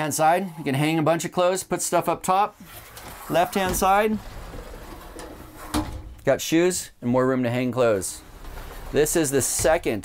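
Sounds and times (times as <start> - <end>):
sliding door rolling on track: 2.9 - 6.2, 8.0 - 9.8.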